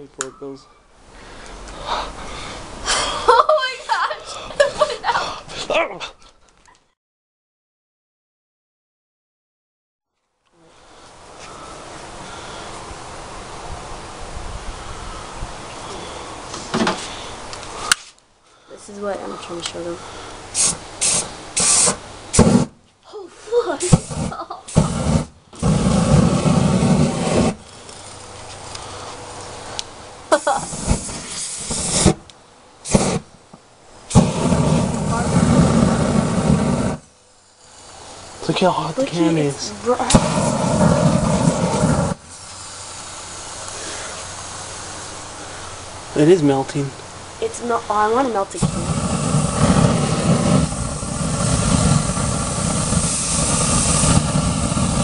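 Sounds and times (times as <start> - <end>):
faint steady rush: 0.0 - 5.9, 10.6 - 55.0
rushing burst of flame: 19.0 - 33.4, 34.0 - 55.0
aerosol spray hissing: 20.5 - 22.7, 23.4 - 28.1, 30.3 - 32.2, 32.8 - 33.3, 34.1 - 45.3, 48.6 - 55.0.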